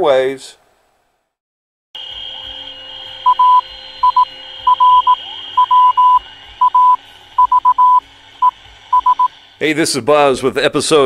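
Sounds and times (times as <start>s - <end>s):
radio whistle and hiss: 2.0s - 9.7s
morse code beeps: 3.0s - 9.4s.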